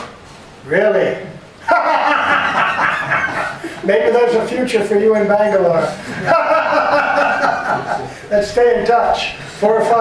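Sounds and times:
person chuckling: 6.0 - 8.3.

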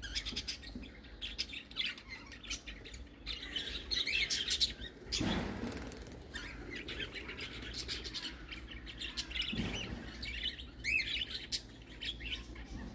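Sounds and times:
budgerigars chirping: 0.0 - 12.9.

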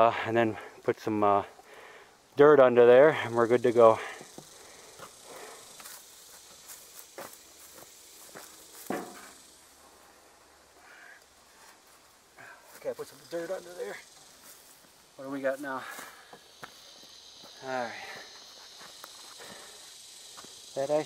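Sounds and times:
footsteps on dirt and grass: 4.1 - 9.6, 11.3 - 20.7.

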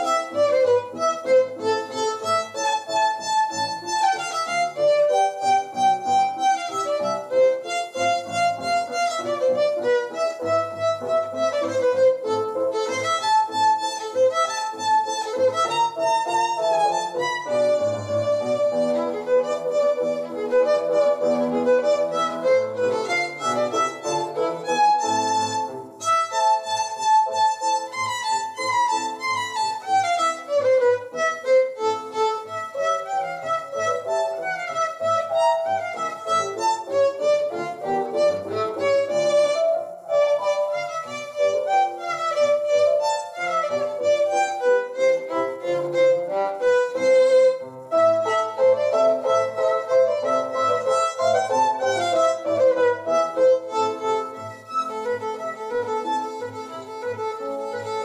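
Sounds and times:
solo violin quick running notes: 0.0 - 58.0.

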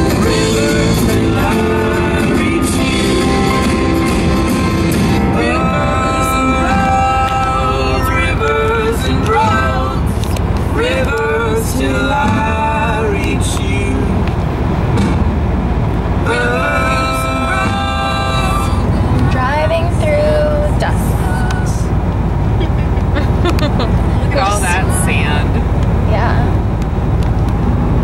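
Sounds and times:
person singing: 0.0 - 4.3, 5.2 - 14.2, 16.3 - 21.8, 22.6 - 25.6
car road and engine rumble: 0.0 - 28.0.

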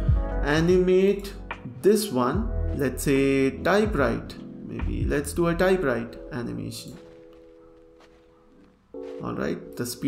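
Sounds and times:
faint background music chord: 0.0 - 10.0.

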